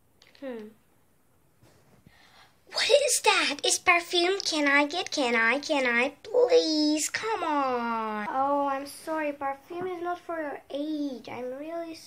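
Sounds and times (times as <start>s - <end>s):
girl speaking loudly: 2.7s - 12.0s.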